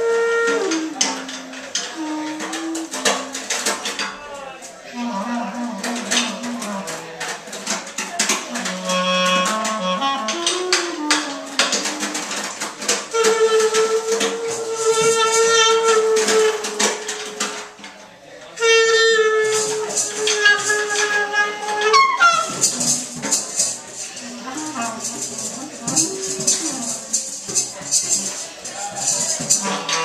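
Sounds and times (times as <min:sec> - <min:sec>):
cello: 0:00.0 - 0:04.1, 0:04.8 - 0:17.8, 0:18.4 - 0:30.0
clarinet: 0:00.0 - 0:30.0.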